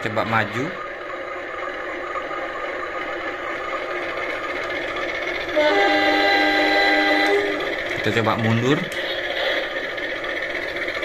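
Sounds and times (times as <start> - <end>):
diesel locomotive engine rumble: 0.0 - 11.0
multi-tone locomotive horn blast: 5.5 - 7.8.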